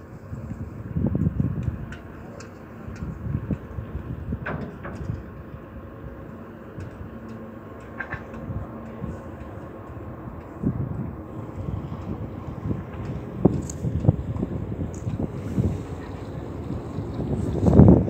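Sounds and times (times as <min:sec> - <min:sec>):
ship engine hum: 0:00.0 - 0:18.0
wind buffeting microphone: 0:00.0 - 0:18.0.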